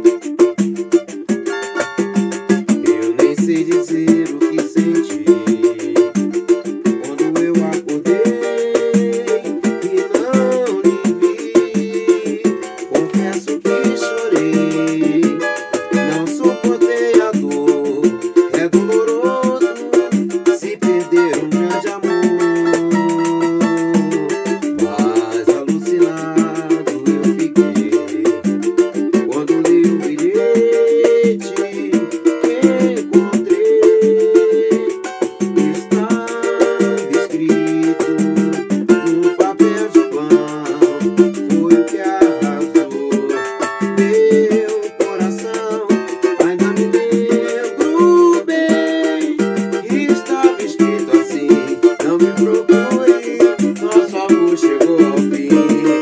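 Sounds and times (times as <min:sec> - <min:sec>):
small guitar plucked and strummed: 0:00.0 - 0:56.0.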